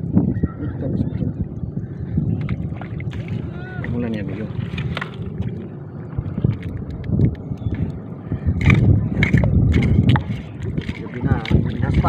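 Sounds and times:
wind on microphone: 0.0s - 12.0s
water sloshing and mud squelching: 0.9s - 12.0s
sharp splashes and scrapes: 2.3s - 7.2s, 7.8s - 12.0s.

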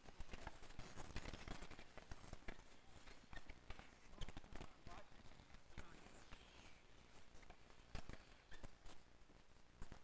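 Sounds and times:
hockey sticks and ball clacking: 0.0s - 9.0s
faint players' voices: 1.3s - 7.0s.

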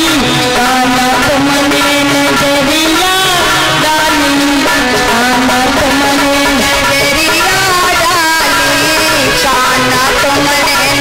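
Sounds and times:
amplified instrumental accompaniment: 0.0s - 11.0s
woman singing into a microphone: 0.0s - 11.0s.

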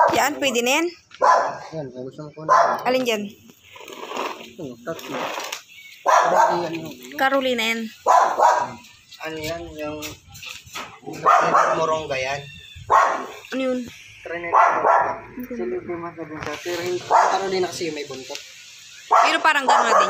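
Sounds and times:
dog barking: 0.0s - 0.2s, 1.2s - 1.8s, 2.4s - 2.9s, 6.0s - 6.7s, 8.0s - 8.8s, 11.2s - 12.0s, 12.9s - 13.4s, 14.5s - 15.2s, 17.0s - 17.5s, 19.1s - 20.0s.

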